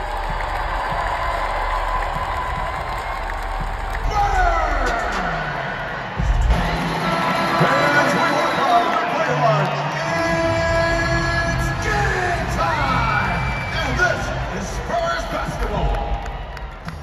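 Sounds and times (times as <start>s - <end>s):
arena crowd cheering: 0.0s - 17.0s
music: 0.0s - 17.0s.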